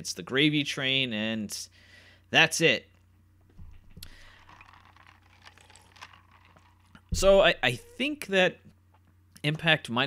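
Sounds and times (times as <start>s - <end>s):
low steady hum: 1.7s - 9.4s.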